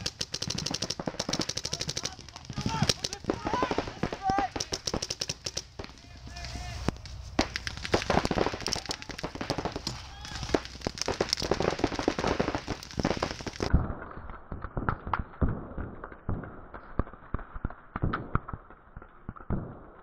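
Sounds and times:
paintball markers firing: 0:00.0 - 0:13.8.

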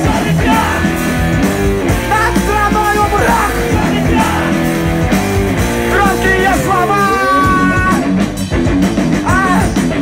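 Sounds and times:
person singing: 0:00.0 - 0:01.0
punk rock band playing live: 0:00.0 - 0:10.0.

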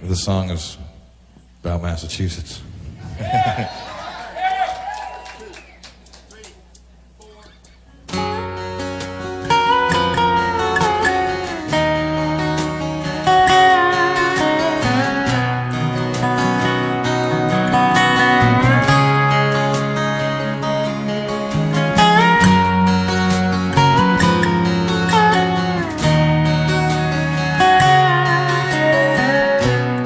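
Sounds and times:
strummed acoustic guitar chords: 0:08.0 - 0:30.0
sliding lead guitar line: 0:08.1 - 0:30.0.

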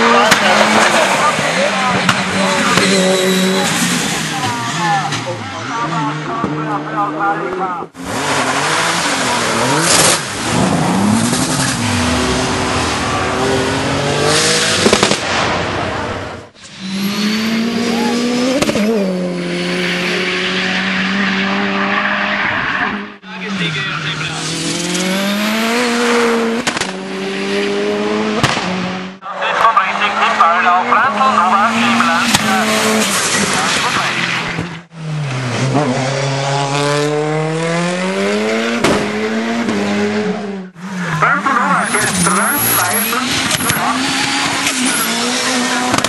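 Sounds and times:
race car engines revving: 0:00.0 - 0:46.0
exhaust backfires: 0:08.0 - 0:19.5.

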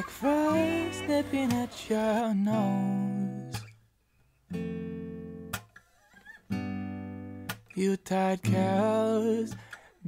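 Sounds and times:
acoustic guitar chord strummed: 0:00.0 - 0:03.8, 0:04.5 - 0:05.7, 0:06.5 - 0:09.9.

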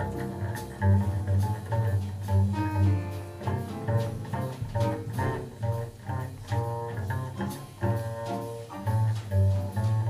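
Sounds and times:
double bass plucked pizzicato: 0:00.0 - 0:10.0.

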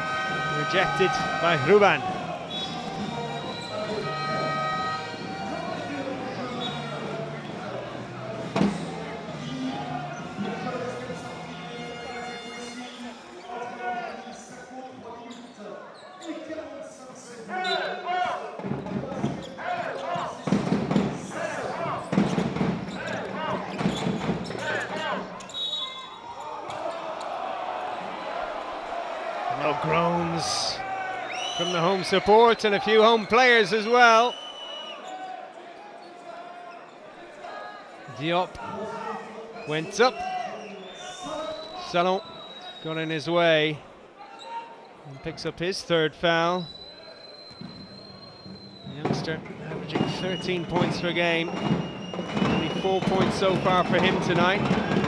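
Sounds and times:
indoor arena crowd noise: 0:00.0 - 0:55.0.

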